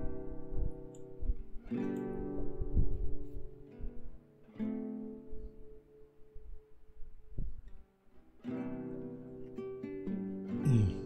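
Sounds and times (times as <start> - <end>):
strummed acoustic guitar chords: 8.4 - 11.0.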